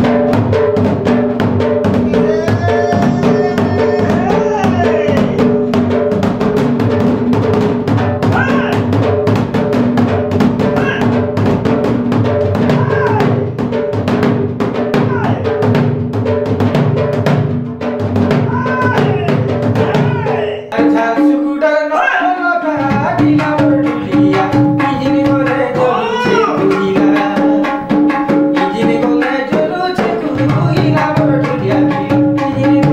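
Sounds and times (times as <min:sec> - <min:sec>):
barrel drum beaten fast: 0:00.0 - 0:21.4, 0:22.7 - 0:32.9
pitched sound: 0:02.0 - 0:05.8.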